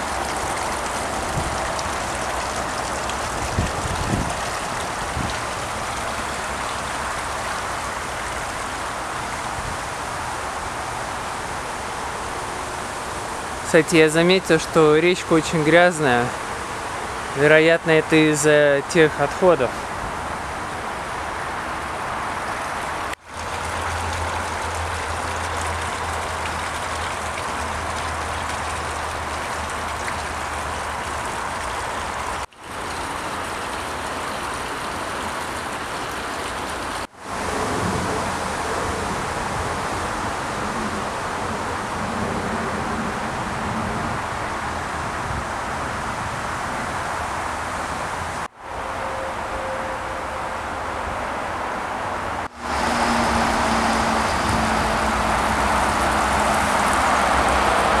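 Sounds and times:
stream water rushing: 0.0 - 58.0.

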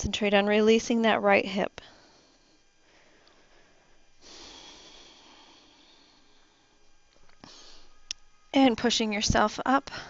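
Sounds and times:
person exhaling breathily: 4.2 - 6.7.

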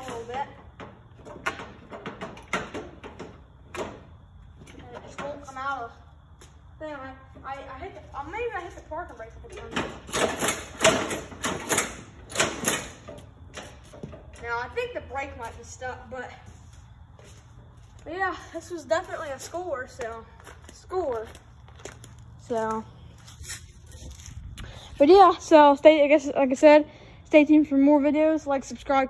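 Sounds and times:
metallic clunks and rattles of brake linkage: 9.5 - 14.2.

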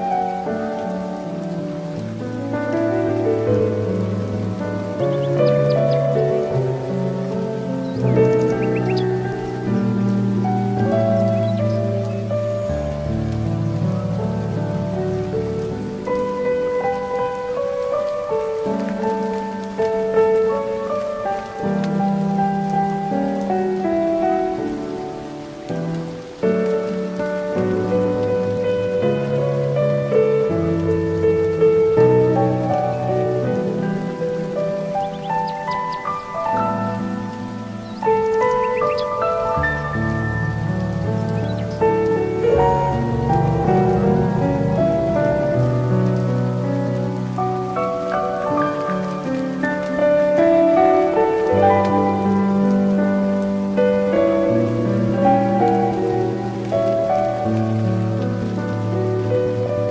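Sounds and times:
slow calm piano music: 0.0 - 59.9
soft hiss of nature ambience: 0.0 - 59.9.

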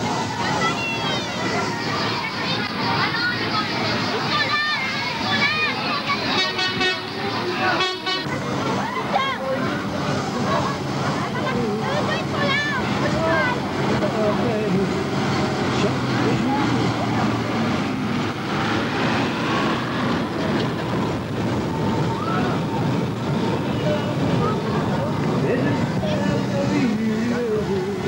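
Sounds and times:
crowd voices: 0.0 - 28.0
small train engine hum: 0.0 - 28.0.

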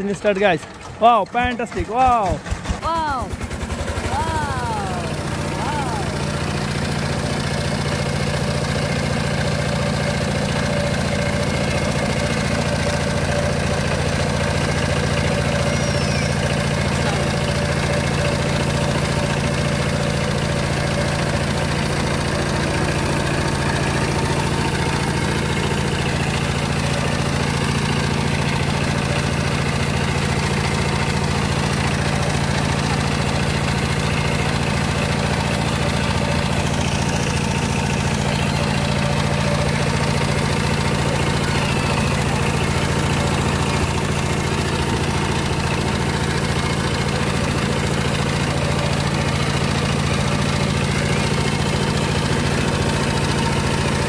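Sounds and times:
diesel tiller engine running: 0.0 - 54.0.

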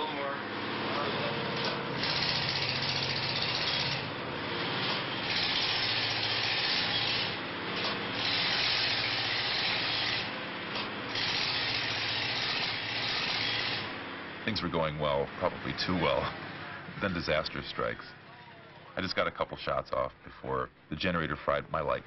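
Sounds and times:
diesel generator humming: 8.8 - 19.5.

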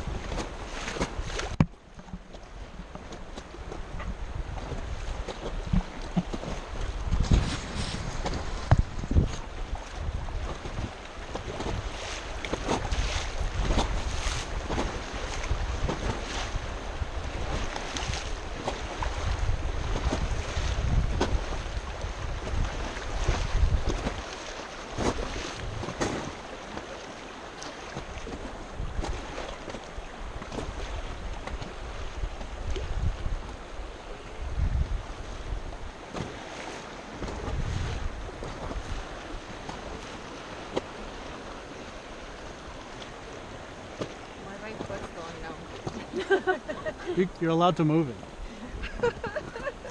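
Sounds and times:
river current rushing: 0.0 - 34.4, 35.0 - 49.9
water splashes: 0.0 - 49.9
wind buffeting microphone: 2.6 - 26.5, 28.0 - 36.5, 37.1 - 47.4, 48.2 - 49.9.

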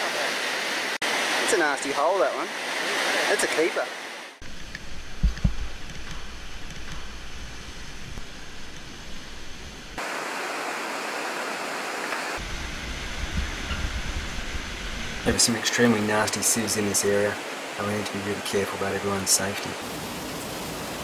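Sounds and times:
river whitewater rushing: 0.0 - 4.7, 7.8 - 21.0.

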